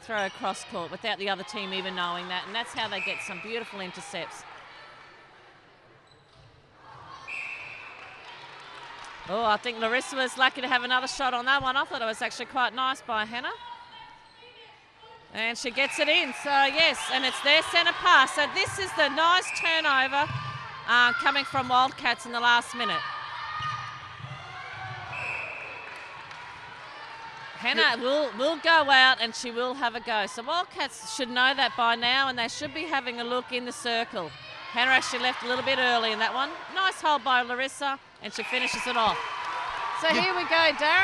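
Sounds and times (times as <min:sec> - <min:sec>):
crowd murmur in a large hall: 0:00.0 - 0:07.3
whistle blast: 0:07.3 - 0:08.0, 0:25.1 - 0:25.9, 0:38.4 - 0:39.2.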